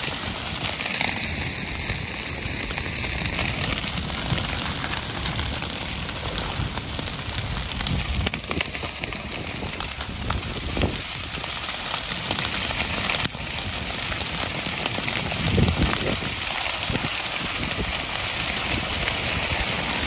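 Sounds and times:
grass fire crackling: 0.0s - 20.0s
wind rumble on microphone: 0.2s - 20.0s.

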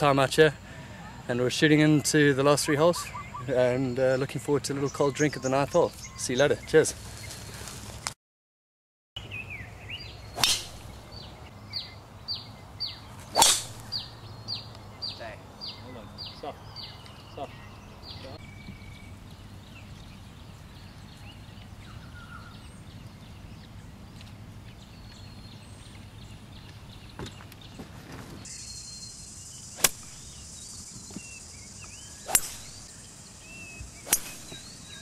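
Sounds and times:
bird chirps: 2.5s - 7.4s, 9.2s - 27.8s, 28.4s - 35.0s
golf clubs striking balls: 10.4s - 11.3s, 13.2s - 14.2s, 29.8s - 31.3s, 31.9s - 32.9s, 34.0s - 35.0s
steady high hiss: 28.5s - 35.0s.

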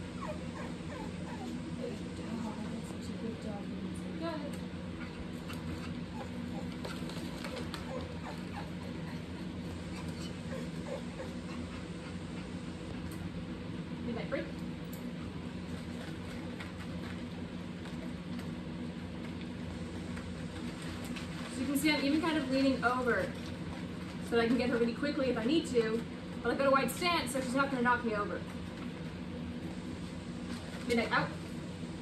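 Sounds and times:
steady low hum: 0.0s - 32.0s
dog eating dry kibble: 5.2s - 11.8s, 15.2s - 18.6s.

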